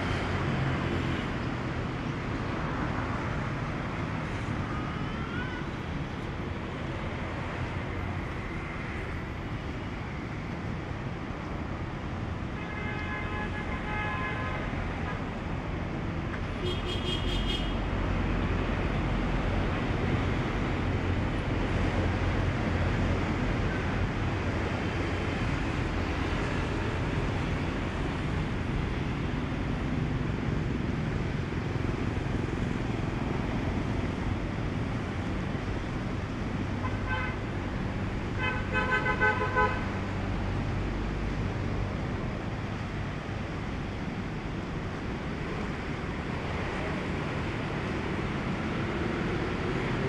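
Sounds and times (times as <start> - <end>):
road traffic: 0.0 - 50.0
vehicle horn honking: 37.0 - 37.4.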